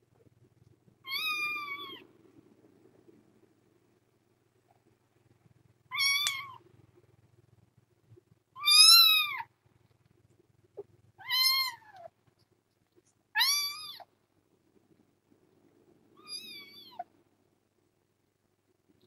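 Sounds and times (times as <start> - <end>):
kitten meowing: 1.0 - 2.0, 5.9 - 6.6, 8.6 - 9.5, 11.2 - 12.1, 13.4 - 14.1, 16.2 - 17.1.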